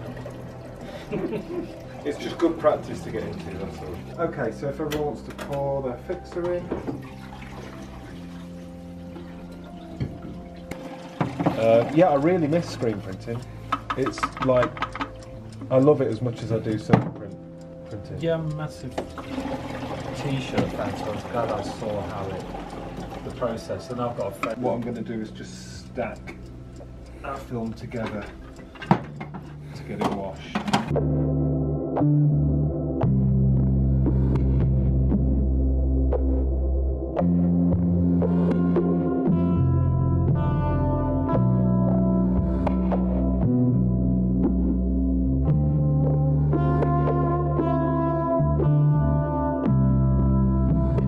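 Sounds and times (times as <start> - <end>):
liquid pouring into plastic tank: 7.0 - 8.4, 19.2 - 23.4
plastic tanks clicking: 9.9 - 17.3, 27.8 - 30.9.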